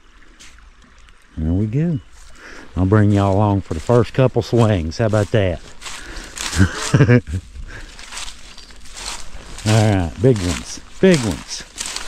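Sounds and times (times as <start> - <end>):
leaves crunching underfoot: 2.1 - 12.0.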